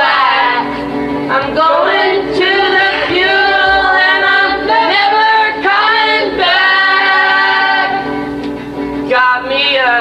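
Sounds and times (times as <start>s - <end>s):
choir singing held notes: 0.0s - 8.2s.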